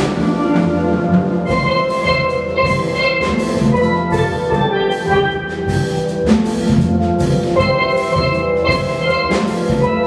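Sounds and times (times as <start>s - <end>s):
steel band playing: 0.0s - 10.0s.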